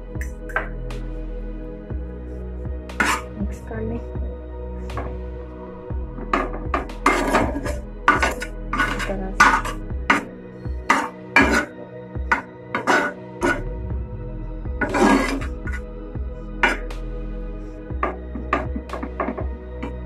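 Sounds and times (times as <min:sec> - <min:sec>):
background music: 0:00.0 - 0:20.0
metal spoon scraping frying pan: 0:03.0 - 0:03.3, 0:07.0 - 0:10.3, 0:10.9 - 0:11.7, 0:12.3 - 0:13.6, 0:14.8 - 0:15.5.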